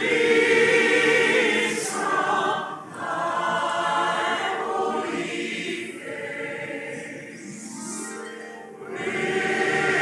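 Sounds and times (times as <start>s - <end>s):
choir singing held chords: 0.0s - 7.7s, 8.7s - 10.0s.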